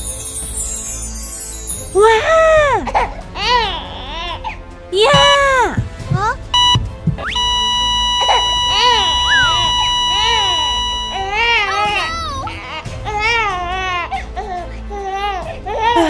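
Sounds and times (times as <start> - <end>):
cartoon voices babbling and wailing: 5.0 - 6.4
heart monitor flatline beep: 5.1 - 5.3, 6.6 - 11.9
short electronic beeps: 6.6 - 11.9.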